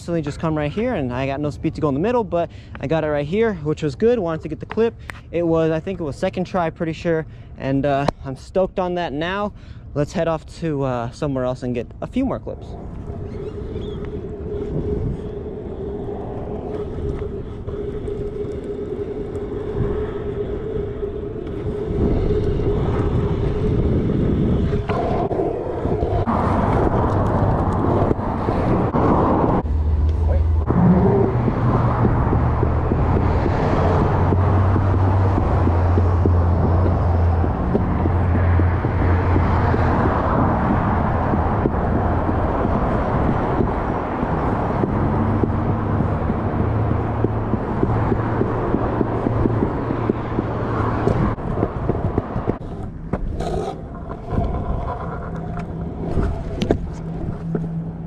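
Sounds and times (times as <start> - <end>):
road traffic passing: 0.0 - 10.0, 11.0 - 58.0
low rumble: 11.6 - 58.0
scooter wheels rolling on pavement: 12.6 - 58.0.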